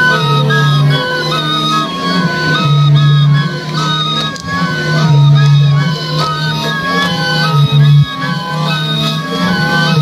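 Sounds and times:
ensemble of end-blown flutes: 0:00.0 - 0:10.0
steady low tone: 0:00.0 - 0:10.0.

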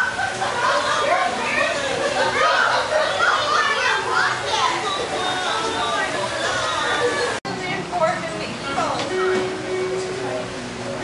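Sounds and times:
young children chattering: 0:00.0 - 0:10.5.

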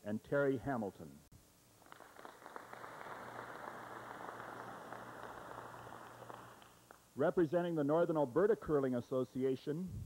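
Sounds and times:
audience applause: 0:01.8 - 0:07.0.

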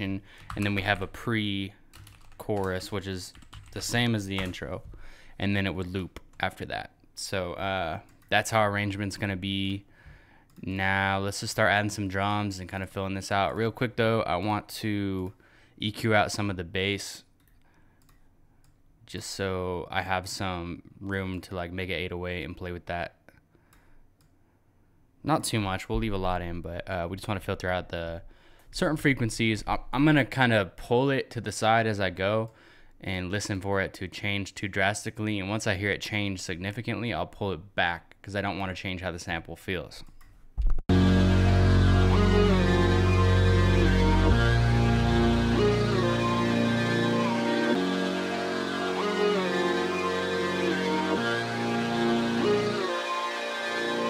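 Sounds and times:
melodic electronic loop: 0:40.9 - 0:54.0.

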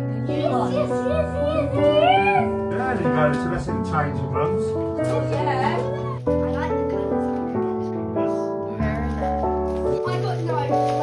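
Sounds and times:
jazzy guitar music: 0:00.0 - 0:11.0
child crying out excitedly: 0:01.0 - 0:02.6.

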